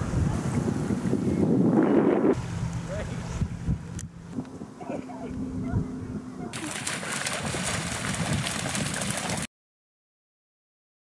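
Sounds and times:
wind and water rushing: 0.0s - 9.5s
muffled low hum: 2.2s - 6.7s.

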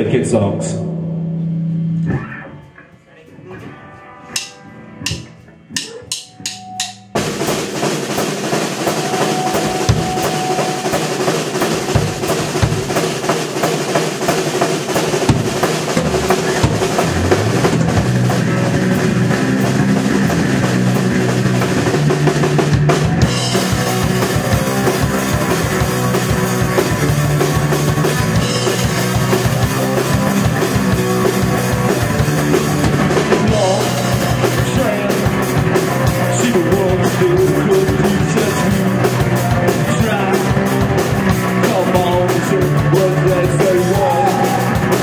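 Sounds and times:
electric guitar: 0.6s - 45.0s
drum kit: 3.5s - 45.0s
drum hits: 4.4s - 45.0s.

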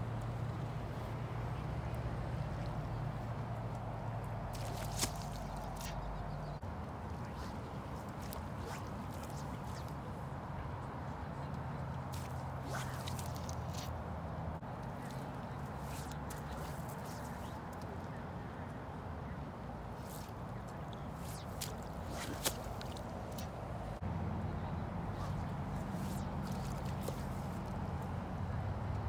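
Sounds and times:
low outdoor rumble: 0.0s - 29.0s
line slapping on water: 4.5s - 6.1s, 7.2s - 10.1s, 12.0s - 13.9s, 15.0s - 17.9s, 20.0s - 23.6s, 25.2s - 27.8s
fly line swishing through air: 4.5s - 10.2s, 12.0s - 14.0s, 14.8s - 17.9s, 19.9s - 24.0s, 25.1s - 27.8s.

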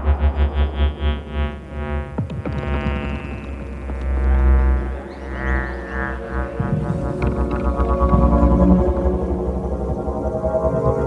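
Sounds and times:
buzzing synth drone: 0.0s - 11.0s
deep bass swell: 0.0s - 11.0s.

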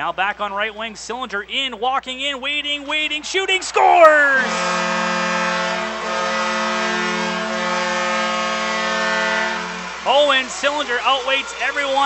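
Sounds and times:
goal horn long low blast: 3.6s - 12.0s.

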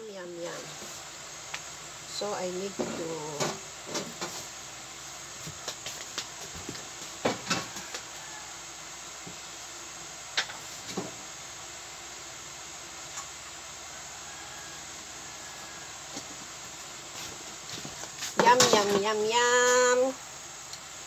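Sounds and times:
steady background hiss: 0.0s - 21.0s.

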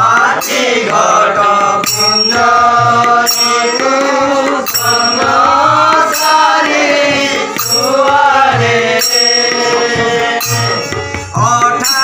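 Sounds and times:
harmonium: 0.0s - 12.0s
hand cymbals ringing: 0.1s - 12.0s.

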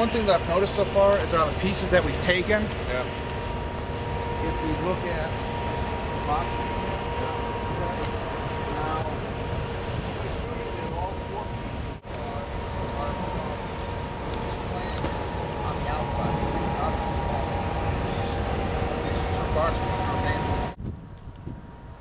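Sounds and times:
faint steady whine: 0.0s - 22.0s
low rumble: 0.0s - 22.0s.

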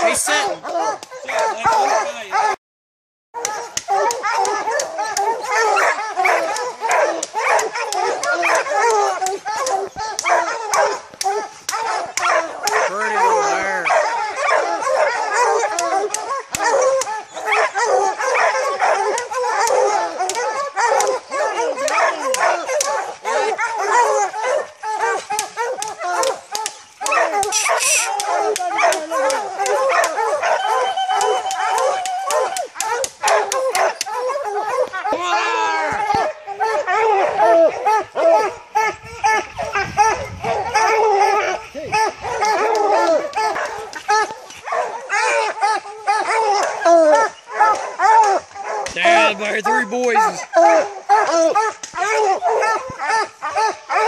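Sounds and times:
hounds baying: 0.0s - 2.6s, 3.4s - 35.3s, 35.9s - 54.0s.

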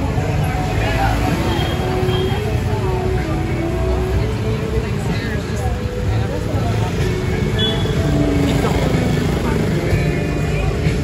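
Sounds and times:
people talking: 0.0s - 11.0s
street traffic: 0.0s - 11.0s.

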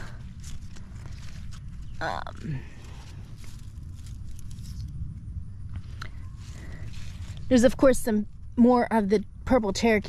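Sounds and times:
leaves and stems rustling: 0.0s - 5.0s, 5.6s - 8.6s
light crackles: 0.0s - 8.6s
low rumble on microphone: 0.0s - 10.0s.

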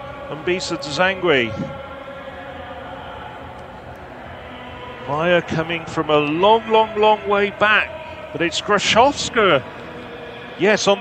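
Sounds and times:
stadium background noise: 0.0s - 11.0s.

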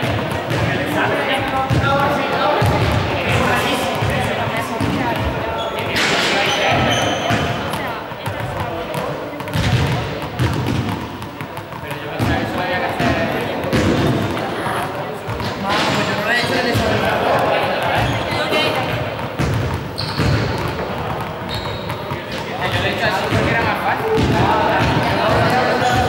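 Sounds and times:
balls bouncing on hard floor: 0.0s - 26.0s.

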